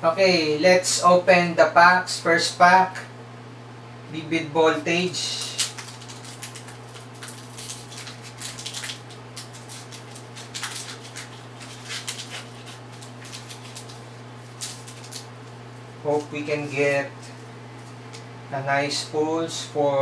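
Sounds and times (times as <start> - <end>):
steady low hum: 0.0 - 20.0
foil wrapper crinkling: 5.0 - 18.3.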